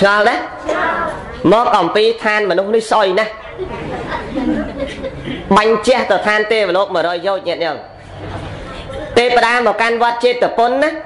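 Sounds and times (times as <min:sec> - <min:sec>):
man speaking into a microphone: 0:00.0 - 0:00.6, 0:01.4 - 0:03.4, 0:05.5 - 0:08.0, 0:09.2 - 0:11.0
faint chatter of voices: 0:08.0 - 0:09.4.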